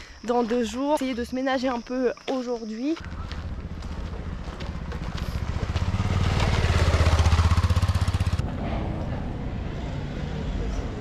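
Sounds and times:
outdoor background noise: 0.0 - 11.0
motorcycle passing: 3.0 - 11.0.

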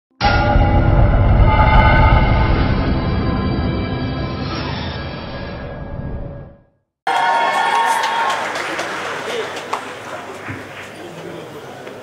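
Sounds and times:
heavy low rumble: 0.2 - 3.8.

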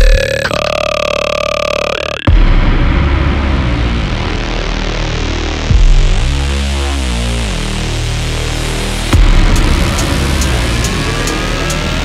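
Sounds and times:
burp-like bass growl: 0.0 - 12.0
dubstep bass and beat: 0.0 - 12.0.

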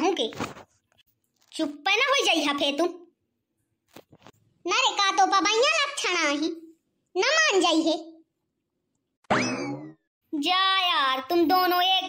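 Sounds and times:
cartoon twang: 9.3 - 10.0.

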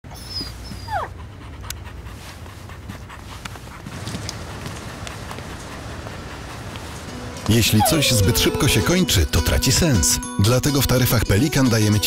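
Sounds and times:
dog whining: 0.0 - 1.4, 7.1 - 9.2.

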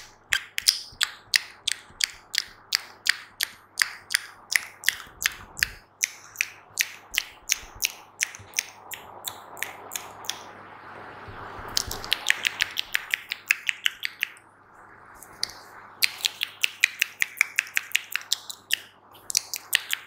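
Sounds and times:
wet mouth clicks: 0.0 - 10.5, 11.8 - 14.4, 15.2 - 20.0.

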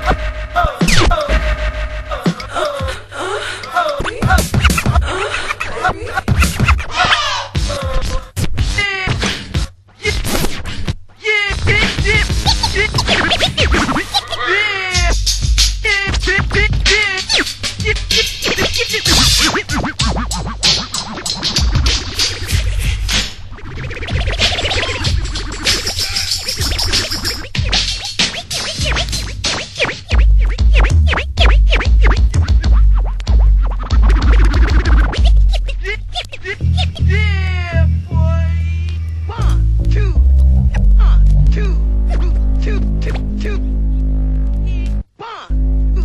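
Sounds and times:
heavy bass line: 0.0 - 2.6, 11.6 - 13.8, 30.2 - 46.0
turntable scratching: 0.0 - 2.6, 4.0 - 37.2
hip hop beat: 0.0 - 3.0, 3.9 - 5.2, 5.8 - 9.7, 11.5 - 46.0.

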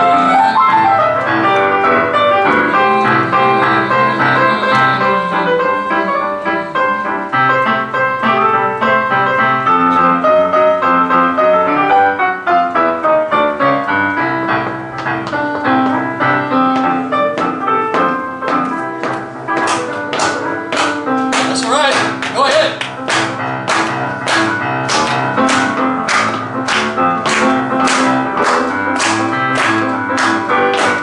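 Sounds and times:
boogie-woogie piano: 0.0 - 31.0.

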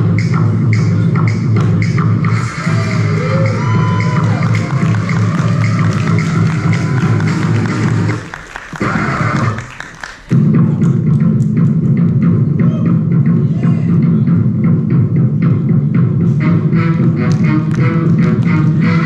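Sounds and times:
stage music with heavy bass beat: 0.0 - 19.0.

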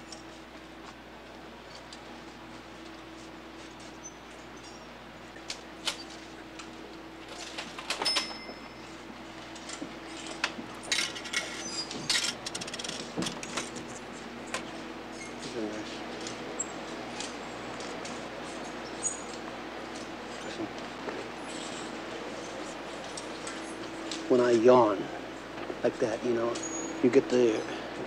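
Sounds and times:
low electrical hum: 0.0 - 28.0
clothes hangers clinking on racks: 7.3 - 8.8, 9.5 - 13.8.

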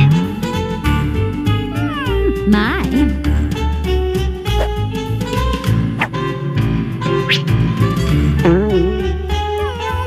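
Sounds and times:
jazzy cartoon music with bass beat: 0.0 - 10.0.

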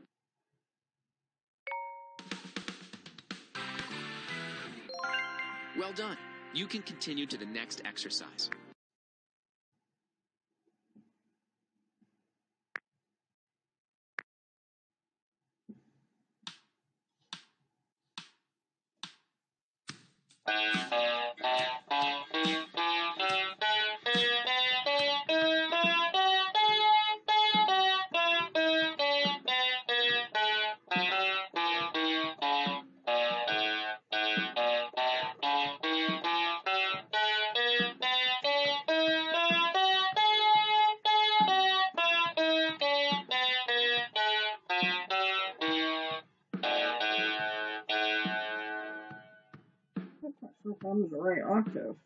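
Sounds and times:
electronic keyboard playing scale: 4.9 - 8.8, 20.5 - 49.2.

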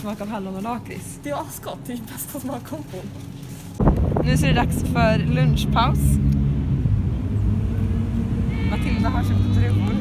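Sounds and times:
road traffic rumble: 0.0 - 10.0
vehicle engine running: 3.8 - 10.0.

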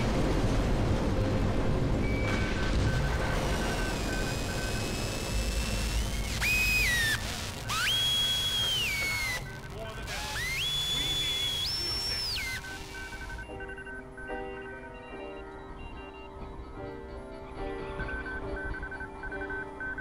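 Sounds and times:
high whistle-like tones: 2.0 - 13.5.

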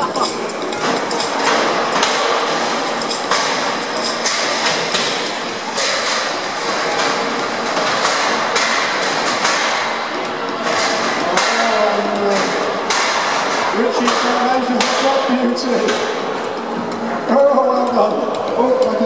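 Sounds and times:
crowd voices: 0.0 - 19.0.

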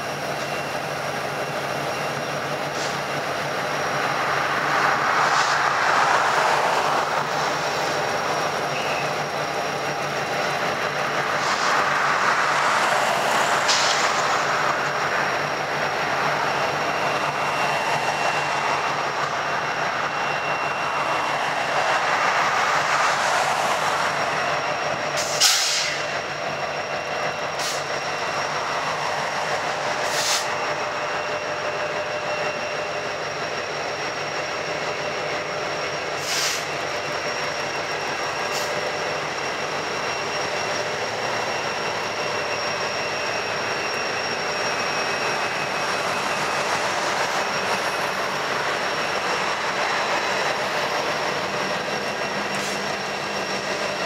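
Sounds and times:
locomotive engine rumble: 0.0 - 54.0
steel wheels on rail: 0.0 - 54.0
thin high whine: 0.0 - 54.0.

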